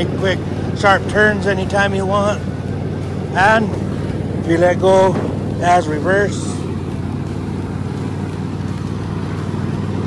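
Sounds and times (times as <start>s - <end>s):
riding lawn tractor engine running: 0.0s - 10.0s.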